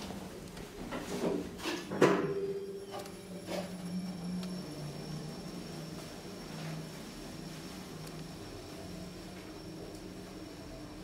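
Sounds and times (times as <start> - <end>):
elevator humming: 2.2 - 11.0
faint high whine from drive: 2.2 - 11.0.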